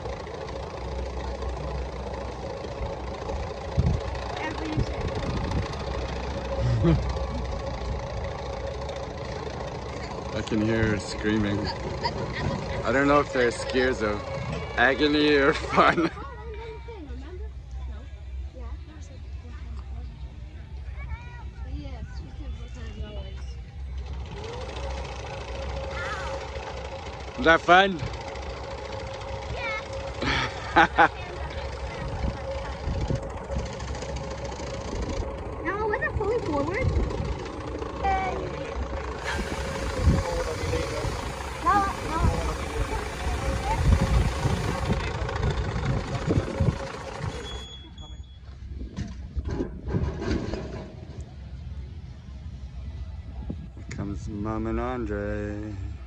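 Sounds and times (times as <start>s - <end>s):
coaster sled on rail: 0.0s - 19.9s, 21.0s - 56.0s
machine hum with low rumble: 0.0s - 56.0s.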